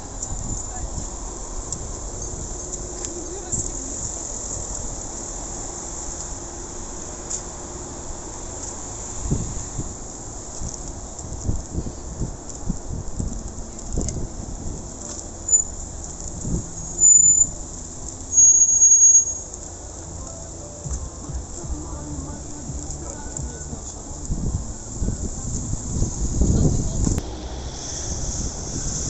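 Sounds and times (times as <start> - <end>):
passers-by talking: 0.0 - 4.8, 19.6 - 27.2
traffic hum: 0.0 - 29.0
loud high-pitched squeal: 16.7 - 17.6, 18.2 - 19.6, 27.2 - 29.0.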